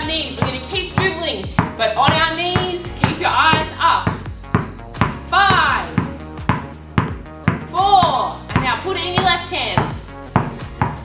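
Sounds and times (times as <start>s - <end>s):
background music with vocals: 0.0s - 11.0s
basketball dribbling on floor: 0.0s - 11.0s.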